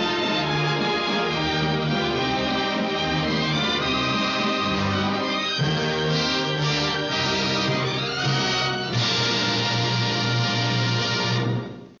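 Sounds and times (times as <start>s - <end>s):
orchestral music sustained chord: 0.0s - 11.9s.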